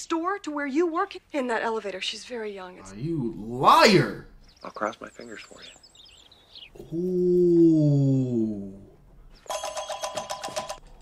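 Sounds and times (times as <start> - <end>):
telephone bell ringing: 9.4 - 11.0.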